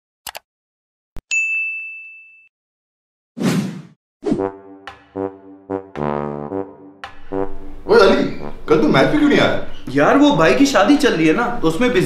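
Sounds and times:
bright bell-like ding: 1.3s - 2.5s.

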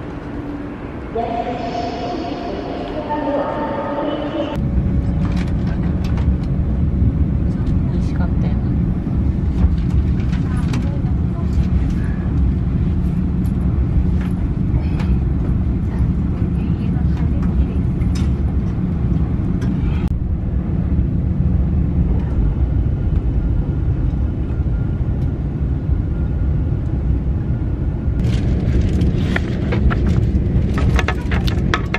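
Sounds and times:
train rumbling inside carriage: 0.0s - 31.9s
clicks and knocks: 30.8s - 31.9s.

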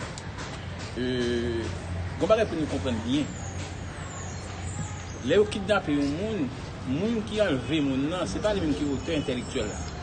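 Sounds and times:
vehicle traffic hum: 0.0s - 10.0s
man speaking: 1.0s - 3.3s, 5.2s - 9.8s.

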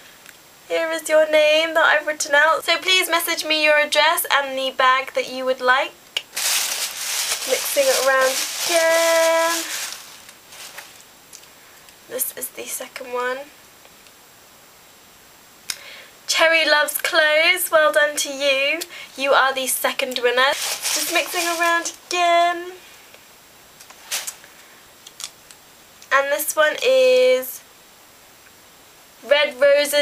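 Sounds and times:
paper rustling: 6.3s - 11.1s, 20.4s - 22.0s, 23.8s - 24.4s.

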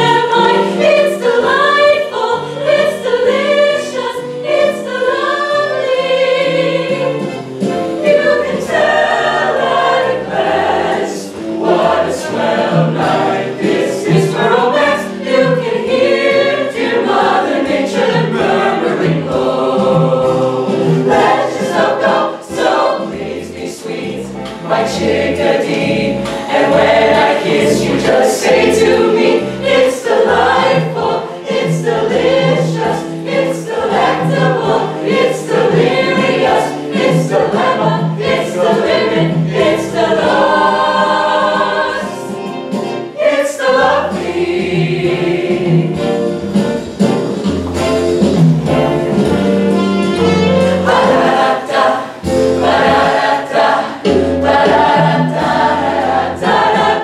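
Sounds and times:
choir singing upbeat song: 0.0s - 57.0s.

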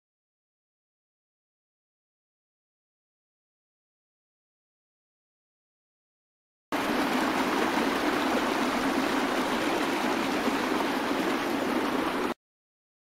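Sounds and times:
rush of flowing water: 6.8s - 12.4s.

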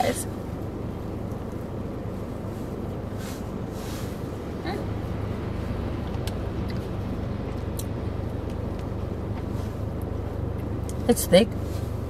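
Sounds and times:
car engine rumble from inside: 0.0s - 12.0s.

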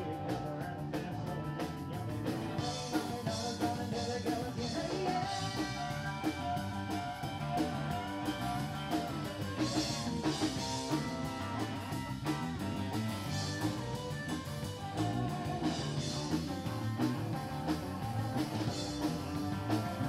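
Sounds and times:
drum kit beat: 0.0s - 20.0s
electric bass: 0.0s - 20.0s
electric guitar: 0.0s - 20.0s.

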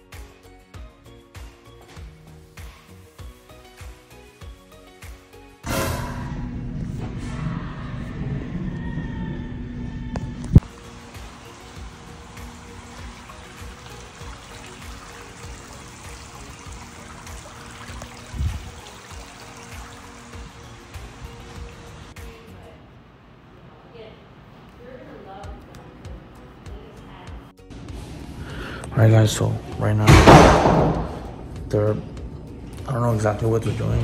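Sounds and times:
soft background music: 0.0s - 8.2s, 8.8s - 23.0s, 24.7s - 34.0s.

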